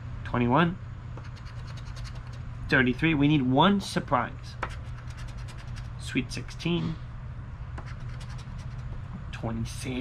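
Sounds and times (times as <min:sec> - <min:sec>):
steady low hum: 0:00.0 - 0:10.0
coin scraping a lottery ticket: 0:01.3 - 0:02.3, 0:04.7 - 0:05.9, 0:07.9 - 0:08.9.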